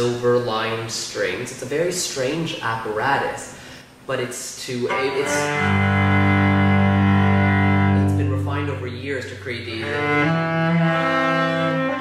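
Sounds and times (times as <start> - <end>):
cello bowed low note: 4.8 - 12.0.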